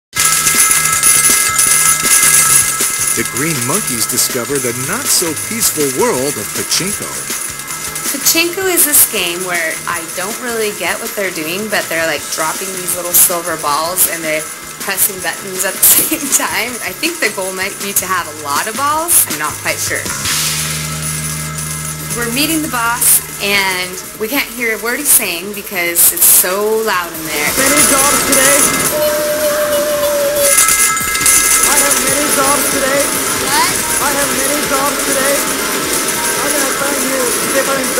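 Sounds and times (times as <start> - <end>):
electronic bell tones: 0.2 - 3.6, 27.3 - 37.9
jingle music from machines: 0.2 - 25.3, 26.2 - 37.9
metallic clatter of steel balls: 0.2 - 37.9.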